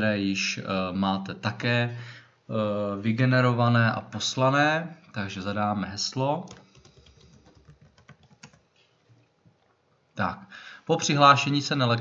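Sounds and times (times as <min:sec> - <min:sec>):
computer keyboard typing: 0:06.5 - 0:08.6.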